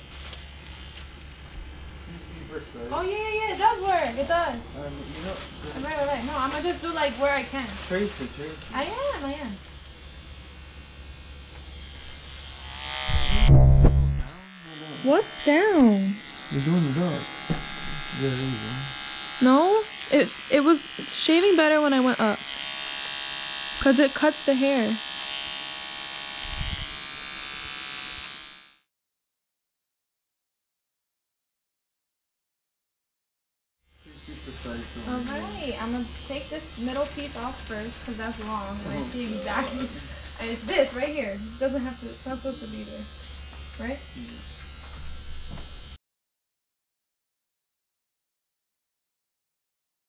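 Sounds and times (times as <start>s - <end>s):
electric hair clippers buzzing: 0.0s - 2.2s, 2.9s - 28.9s, 33.9s - 46.0s
voices: 14.9s - 17.3s, 18.2s - 22.4s, 34.1s - 42.9s.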